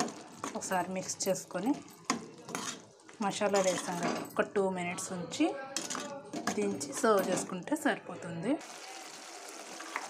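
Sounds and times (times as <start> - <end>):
metal spoon scraping cooking pot: 2.1 - 4.4
woman talking: 3.2 - 5.6, 6.5 - 8.6.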